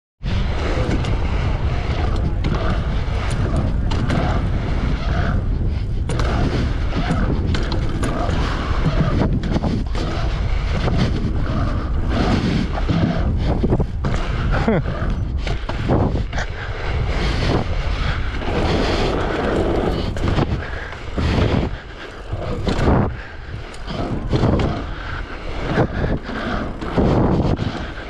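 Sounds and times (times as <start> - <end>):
bike clicks and rattles: 0.2 - 28.0
wind buffeting microphone: 0.2 - 28.0
tyres rumbling on hard surface: 0.3 - 28.0.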